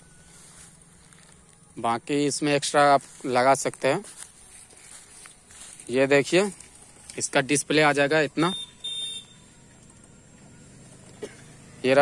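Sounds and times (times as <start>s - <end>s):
short high-pitched electronic beep: 8.4s - 9.5s.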